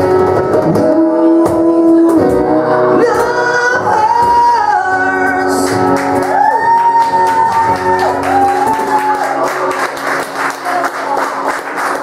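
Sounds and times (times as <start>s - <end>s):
man singing: 0.0s - 6.0s.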